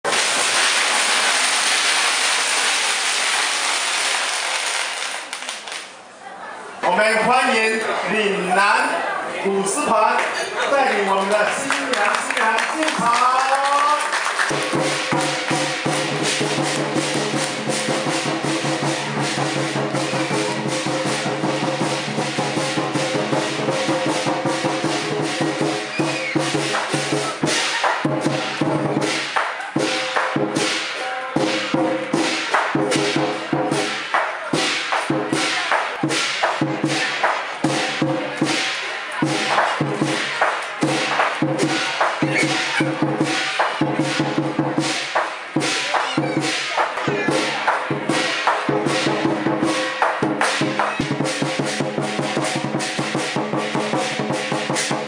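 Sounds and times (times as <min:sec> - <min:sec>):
drum cymbals and gong rhythm: 0:00.1 - 0:02.3, 0:14.5 - 0:55.0.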